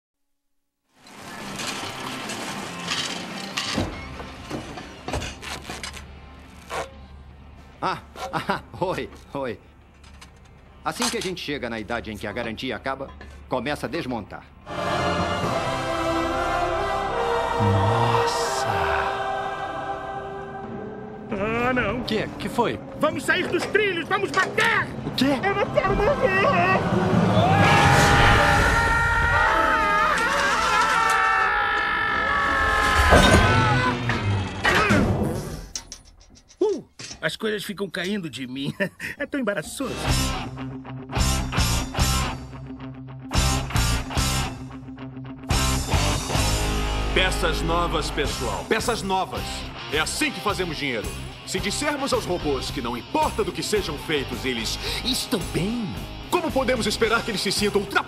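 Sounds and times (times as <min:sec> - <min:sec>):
film music with sustained notes: 0:01.1 - 0:34.7, 0:38.2 - 0:58.0
cartoon robots screaming: 0:27.4 - 0:35.2.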